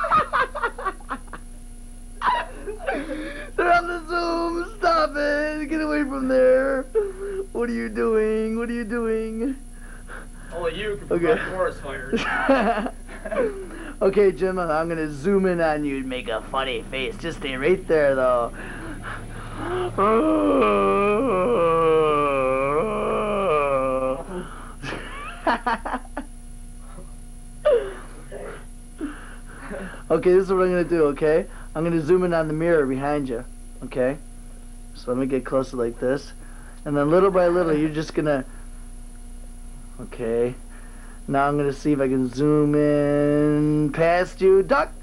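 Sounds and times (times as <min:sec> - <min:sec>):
man wailing: 0:00.0 - 0:01.2, 0:02.2 - 0:09.6, 0:10.8 - 0:14.0, 0:17.6 - 0:26.0
man laughing: 0:00.0 - 0:01.5, 0:02.2 - 0:05.5, 0:06.3 - 0:07.8, 0:10.1 - 0:14.0, 0:17.8 - 0:26.3, 0:27.6 - 0:30.0.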